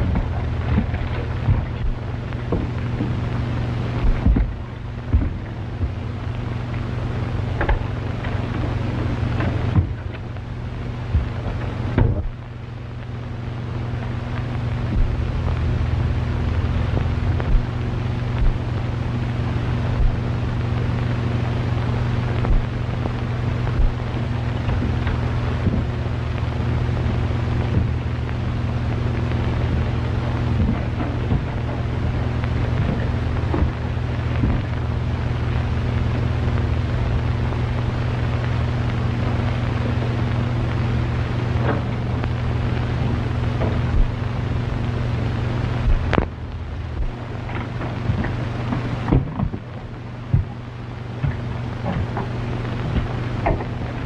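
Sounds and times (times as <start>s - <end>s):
film crackles and clicks: 0.0s - 54.0s
low electrical hum and hiss: 0.0s - 54.0s.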